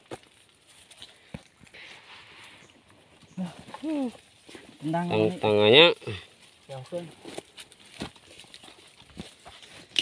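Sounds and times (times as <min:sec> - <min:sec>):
rustling of undergrowth: 0:00.0 - 0:10.0.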